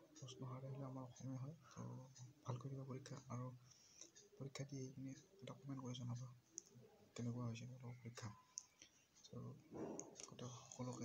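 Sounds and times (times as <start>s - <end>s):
man speaking softly: 0.0s - 11.0s.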